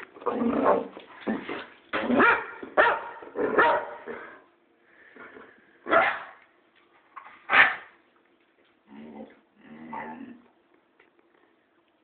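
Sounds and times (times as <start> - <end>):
dog barking: 2.2 - 4.1, 5.9 - 6.4, 7.5 - 7.9.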